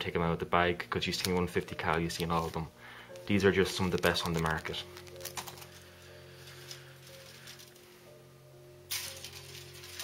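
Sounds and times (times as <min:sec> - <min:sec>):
quiet background music: 0:00.0 - 0:10.0
handling noise rustle: 0:01.2 - 0:07.8.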